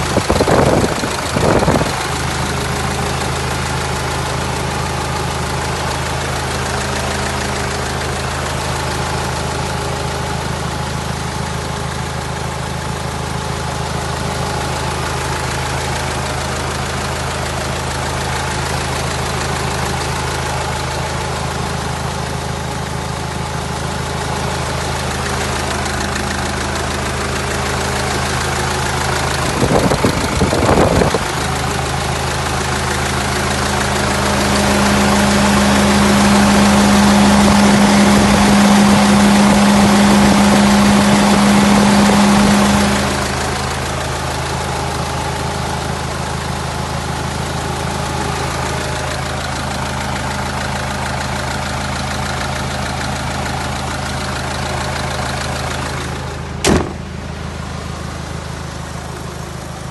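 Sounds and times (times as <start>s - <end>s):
diesel engine idling: 0.0s - 59.9s.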